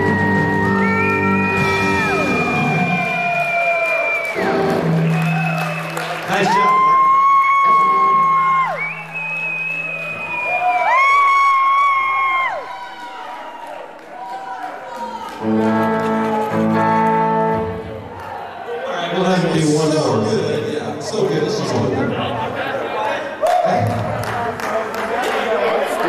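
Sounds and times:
live rock band playing: 0:00.0 - 0:10.5, 0:15.3 - 0:18.1
crowd cheering and whooping: 0:00.0 - 0:19.2.

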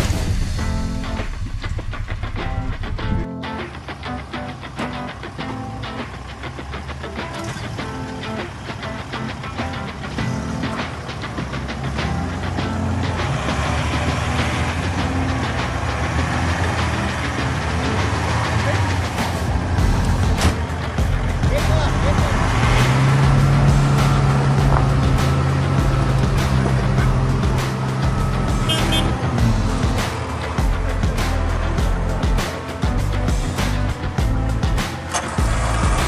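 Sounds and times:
off-road vehicle engine under load: 0:00.0 - 0:36.0.

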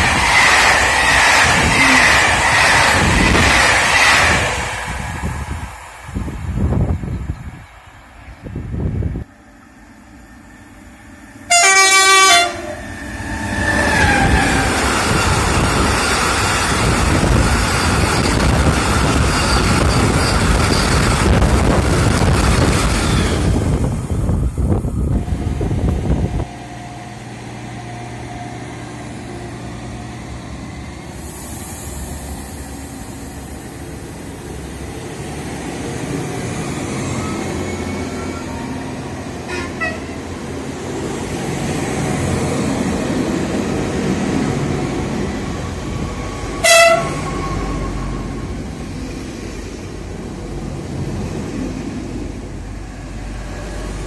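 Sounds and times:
electric trains rumbling: 0:00.0 - 0:54.0
freight train rumbling past: 0:00.0 - 0:54.0
train horn blast: 0:11.5 - 0:12.8, 0:39.4 - 0:40.2, 0:46.6 - 0:47.7.

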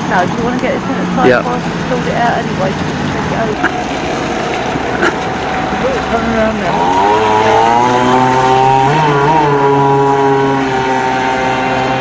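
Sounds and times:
model boat engine idling: 0:00.0 - 0:12.0.

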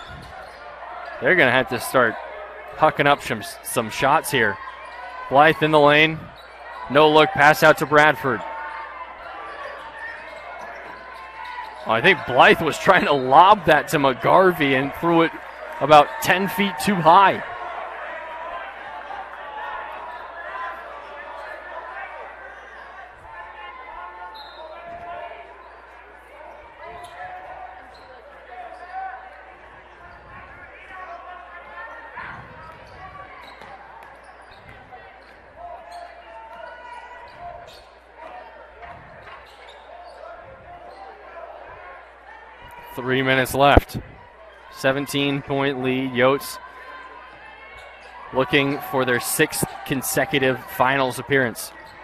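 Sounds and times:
murmur of crowd voices: 0:00.0 - 0:52.0.

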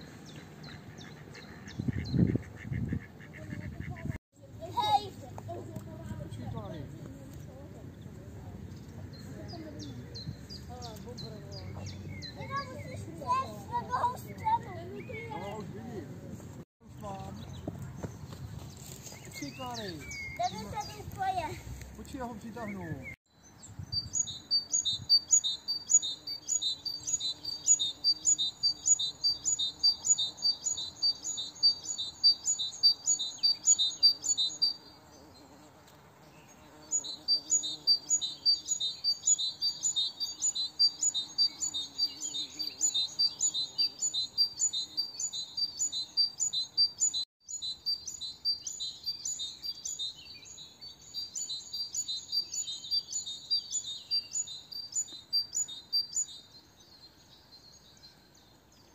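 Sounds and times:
songbird repeating high chirp: 0:19.2 - 0:21.4, 0:22.6 - 0:35.4, 0:36.5 - 0:58.9.

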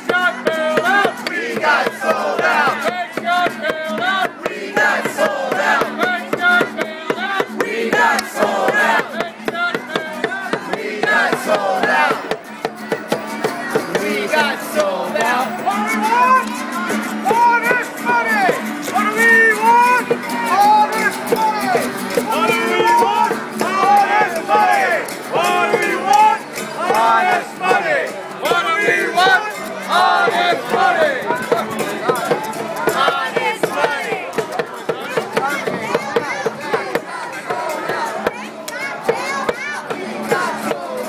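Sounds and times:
steady drum beat: 0:00.0 - 0:16.4, 0:17.0 - 0:41.0
crowd chanting and shouting: 0:00.0 - 0:41.0.

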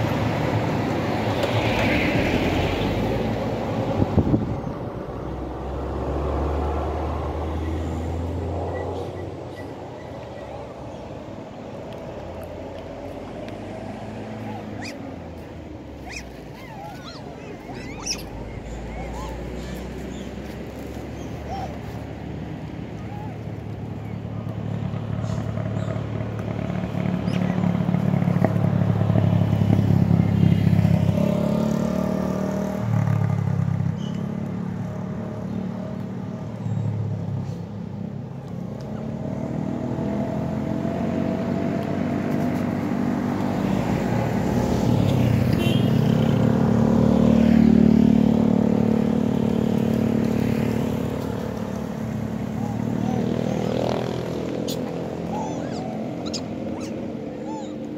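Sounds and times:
cars passing: 0:00.0 - 0:57.9
motorcycles passing: 0:00.0 - 0:57.9.

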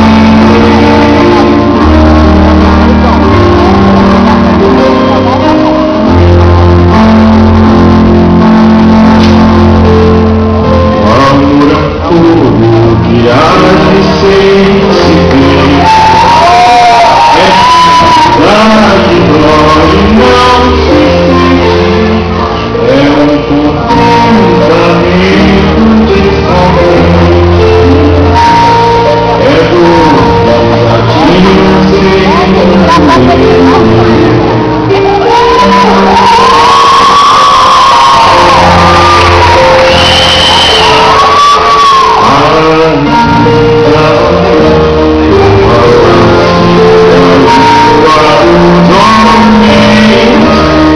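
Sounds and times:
live band music: 0:00.0 - 0:50.9
singer holding long loud notes: 0:00.0 - 0:50.9.

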